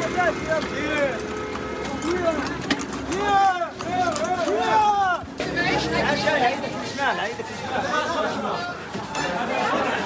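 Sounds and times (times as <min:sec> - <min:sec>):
babble of overlapping voices: 0:00.0 - 0:10.0.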